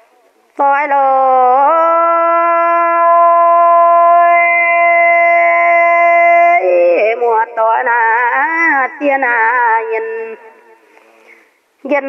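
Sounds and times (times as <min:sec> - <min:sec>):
woman singing long note: 0:00.6 - 0:10.6.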